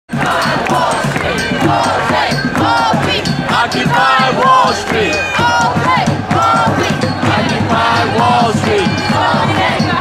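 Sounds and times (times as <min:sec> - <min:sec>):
crowd shouting and chanting: 0:00.1 - 0:10.0
drumming on makeshift objects: 0:00.1 - 0:10.0.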